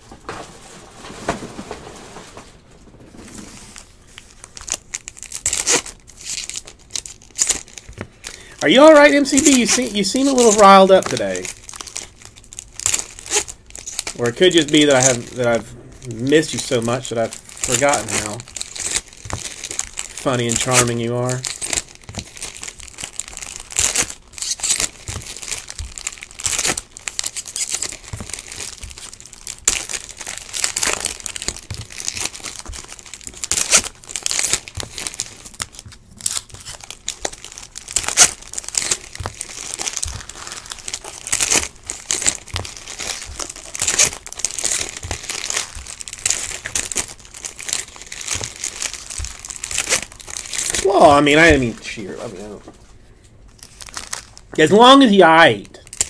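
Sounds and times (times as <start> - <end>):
cards shuffling: 0.2 - 56.0
wrappers tearing and crinkling: 0.2 - 56.0.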